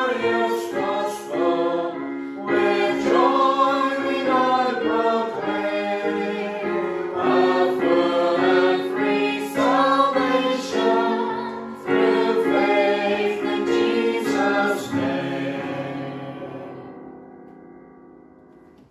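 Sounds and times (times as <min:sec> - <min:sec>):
choir singing a hymn: 0:00.0 - 0:17.2
electronic keyboard: 0:00.0 - 0:18.9.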